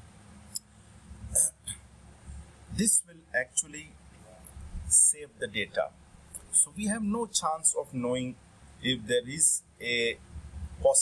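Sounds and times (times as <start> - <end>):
hiccup-like vocal catch: 1.3 - 1.7.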